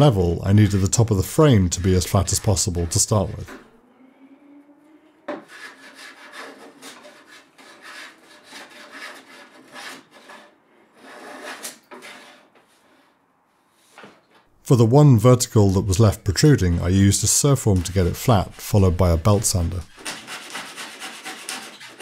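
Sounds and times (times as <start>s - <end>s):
hand plane shaving wood: 0.5s - 3.6s, 5.3s - 12.5s, 16.5s - 22.0s.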